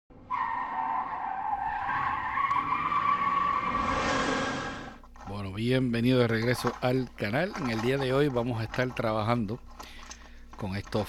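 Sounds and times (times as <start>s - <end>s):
tyre squeal: 0.3s - 5.1s.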